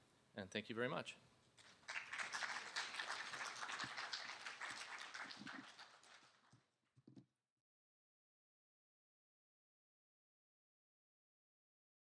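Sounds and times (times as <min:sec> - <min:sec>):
audience applauding: 0:01.6 - 0:06.6.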